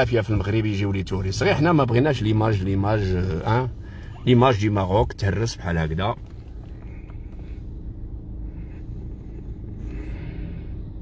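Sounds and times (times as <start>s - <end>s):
car engine rumble from inside: 0.0s - 11.0s.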